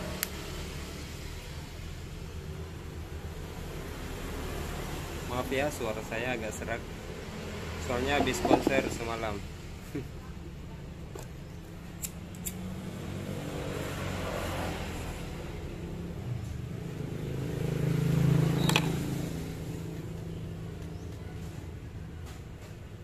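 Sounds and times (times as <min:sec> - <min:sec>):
vehicle engine humming: 0:00.0 - 0:14.1, 0:14.9 - 0:23.0.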